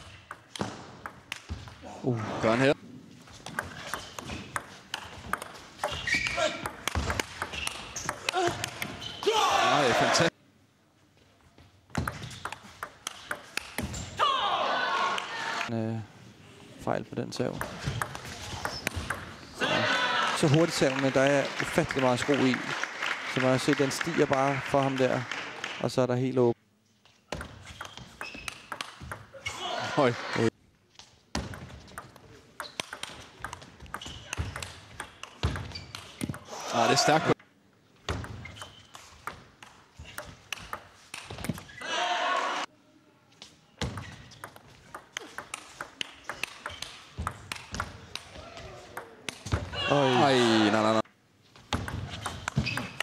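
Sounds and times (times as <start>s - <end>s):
spectators cheering: 9.2s - 10.3s, 19.6s - 24.9s, 41.8s - 42.7s
table tennis ball clicking: 18.8s - 19.2s, 31.5s - 36.4s, 44.4s - 48.3s
person shouting: 49.8s - 50.7s.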